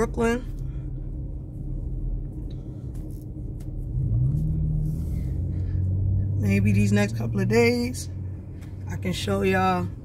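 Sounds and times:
rising hum: 0.0s - 8.9s
vehicle engine rumbling: 0.0s - 10.0s.

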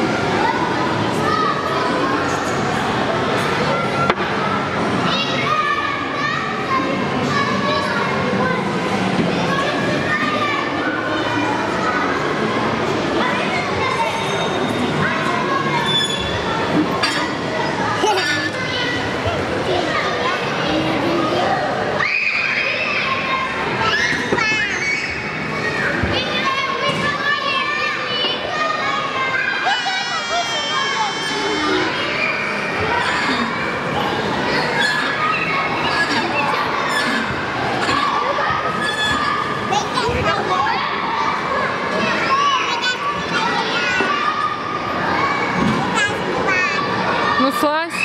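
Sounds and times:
children chattering and calling: 0.0s - 48.0s
hubbub of a large hall: 0.0s - 48.0s.

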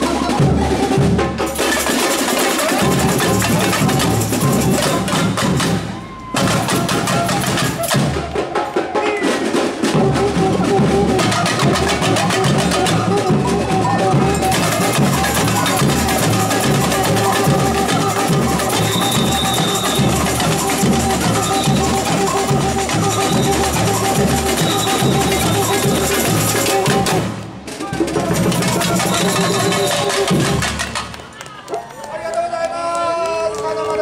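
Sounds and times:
samba drum band playing: 0.0s - 31.2s
snare drums: 0.0s - 31.3s
clacking tamborims: 11.2s - 31.3s.

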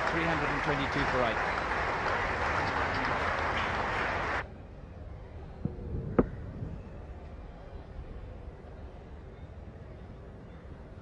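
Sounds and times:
crowd applauding: 0.0s - 4.4s.

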